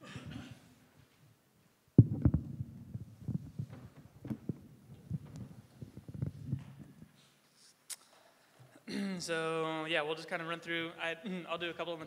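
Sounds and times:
low thumps and rumbles: 2.0 - 6.9
microphone handling knocks: 2.0 - 7.0.

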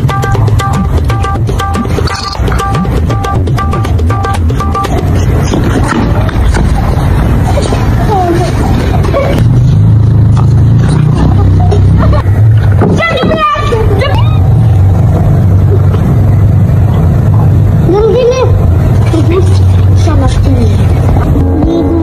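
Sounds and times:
children's voices: 7.4 - 9.4, 11.2 - 14.6, 17.8 - 22.0
child crying or shouting: 13.0 - 14.5.

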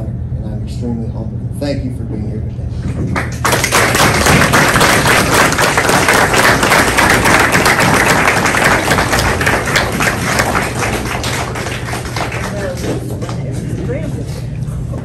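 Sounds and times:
crowd applauding: 3.2 - 13.4.

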